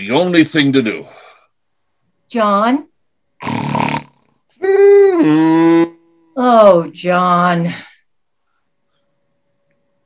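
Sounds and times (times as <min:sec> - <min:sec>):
person making comic snore: 0:03.4 - 0:06.0.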